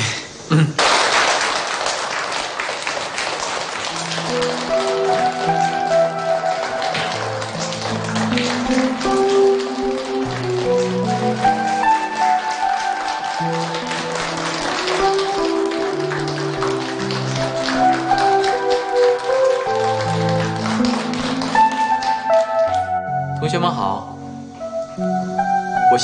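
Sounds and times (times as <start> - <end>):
group clapping: 0.8 - 23.0
slow melodic score: 3.9 - 26.0.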